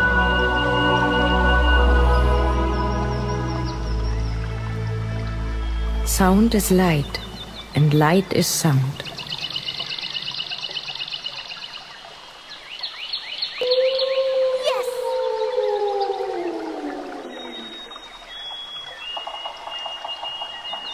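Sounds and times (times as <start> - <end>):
wolf howl: 13.6 - 18.0.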